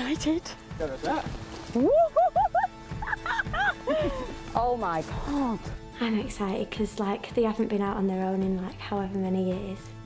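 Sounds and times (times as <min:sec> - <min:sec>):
background music: 0:00.0 - 0:10.0
woman squealing and laughing: 0:01.8 - 0:04.3.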